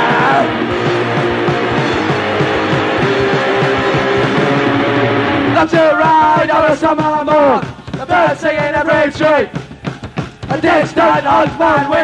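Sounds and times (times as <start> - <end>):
electric guitar chords: 0.0 - 5.7
fast drum beat: 0.0 - 12.0.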